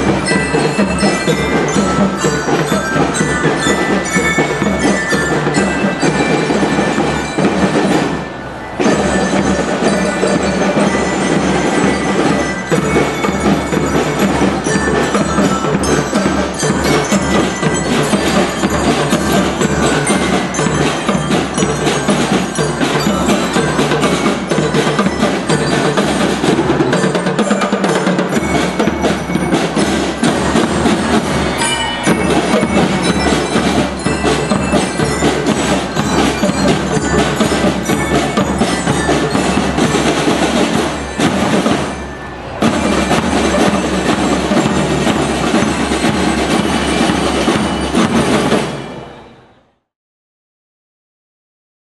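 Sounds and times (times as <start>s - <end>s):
marching snare and bass drums: 0.0s - 49.1s
bell lyres playing melody: 0.0s - 49.8s.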